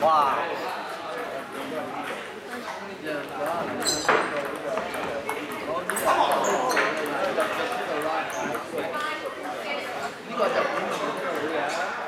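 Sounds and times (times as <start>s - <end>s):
chatter in a large hall: 0.0s - 12.0s
ping pong ball clicking: 3.4s - 9.2s.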